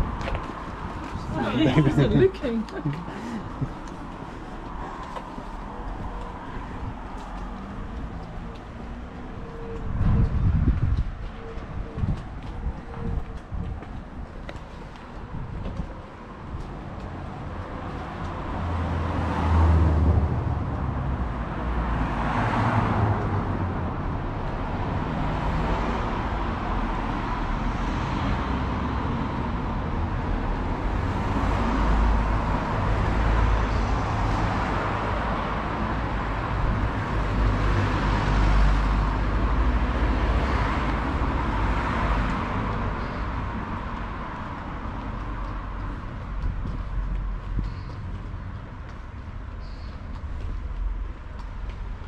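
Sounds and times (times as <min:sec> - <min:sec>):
road traffic rumble: 0:00.0 - 0:52.0.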